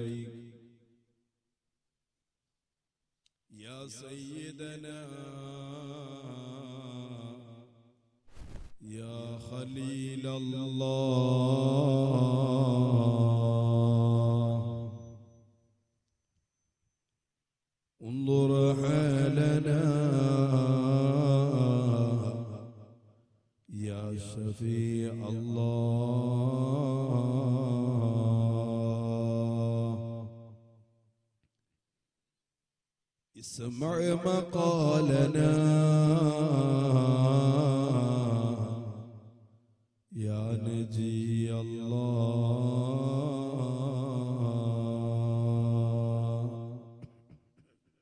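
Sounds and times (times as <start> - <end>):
man chanting: 0.0 - 0.6, 3.5 - 7.6, 8.8 - 15.0, 18.0 - 22.7, 23.7 - 30.4, 33.4 - 39.2, 40.1 - 47.0.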